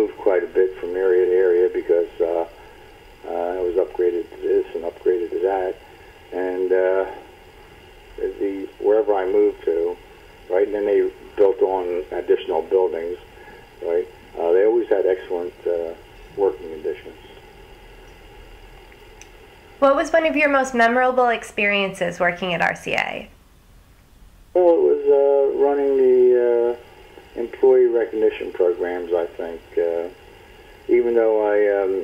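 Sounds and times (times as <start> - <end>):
man talking: 0.0 - 2.6, 3.2 - 7.2, 8.2 - 17.4, 24.6 - 26.8, 27.4 - 30.2, 30.9 - 32.0.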